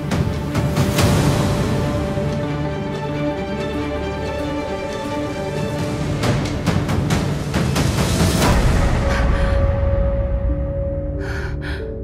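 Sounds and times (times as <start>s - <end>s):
sustained soundtrack music: 0.0s - 12.0s
woman gasping for breath: 11.1s - 12.0s.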